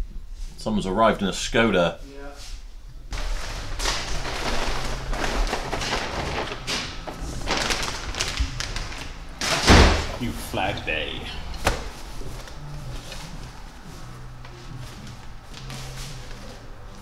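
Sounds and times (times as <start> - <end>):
cloth rustling: 3.1 - 10.6
heavy thud: 9.4 - 10.2.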